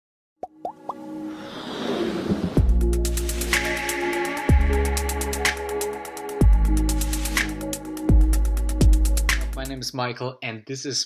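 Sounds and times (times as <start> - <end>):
electronic music: 2.6 - 9.8.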